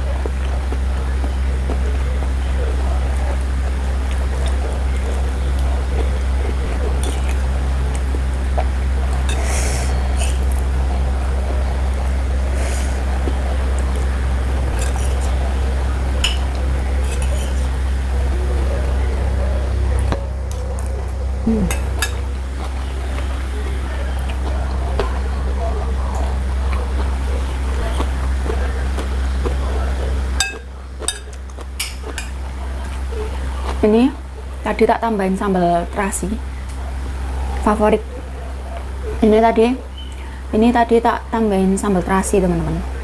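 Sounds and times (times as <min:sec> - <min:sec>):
steady low hum: 0:00.0 - 0:43.0
cutlery clinking on a plate: 0:16.2 - 0:17.6, 0:21.7 - 0:22.2, 0:30.4 - 0:32.4.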